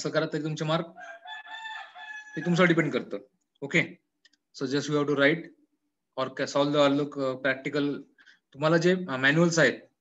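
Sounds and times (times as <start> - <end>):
man speaking: 0.0 - 1.0, 2.4 - 10.0.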